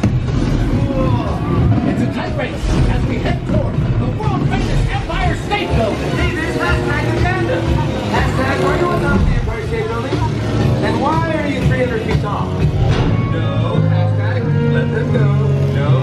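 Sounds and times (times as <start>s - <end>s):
loud soundtrack music: 0.0s - 16.0s
sustained bass notes: 0.0s - 16.0s.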